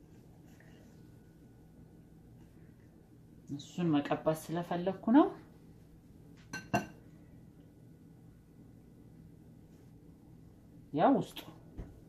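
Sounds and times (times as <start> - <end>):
knife clinking on glass bowl: 6.5 - 7.0.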